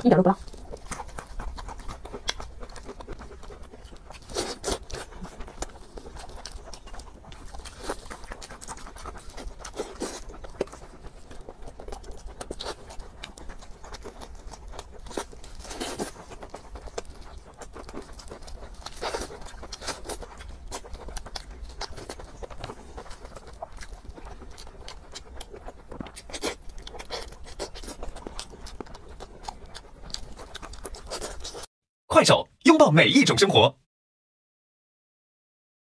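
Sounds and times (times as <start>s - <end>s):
close chewing with crunches: 0.0s - 31.7s.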